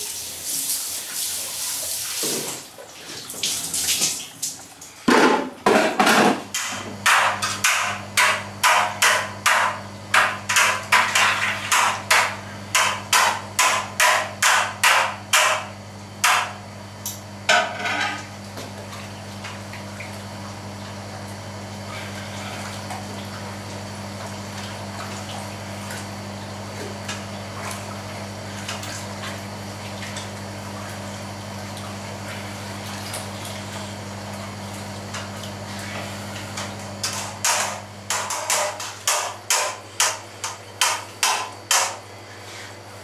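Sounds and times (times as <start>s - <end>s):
low electrical hum: 0.0s - 43.0s.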